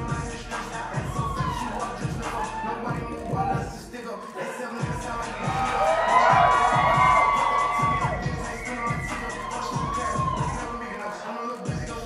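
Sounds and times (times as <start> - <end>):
loud dance music: 0.0 - 12.0
audience cheering: 0.7 - 12.0.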